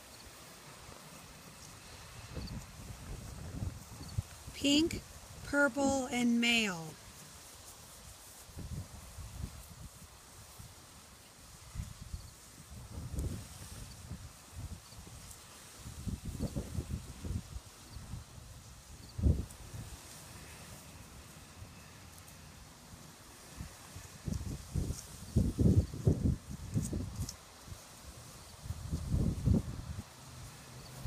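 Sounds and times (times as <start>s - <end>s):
footsteps through grass: 7.0s - 17.4s.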